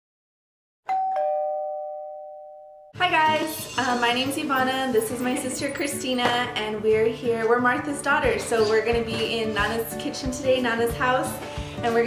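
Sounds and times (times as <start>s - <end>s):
two-note doorbell chime: 0.9s - 2.9s.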